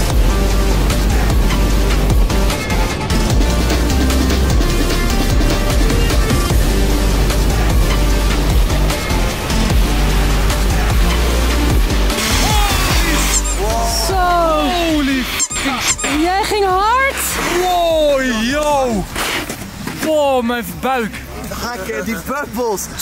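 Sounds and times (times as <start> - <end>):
electronic music with heavy bass: 0.0 - 19.0
person whooping: 12.3 - 15.0.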